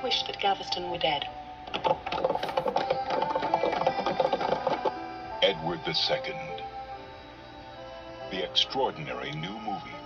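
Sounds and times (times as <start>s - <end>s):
rapid mechanical ticking: 1.7s - 5.0s.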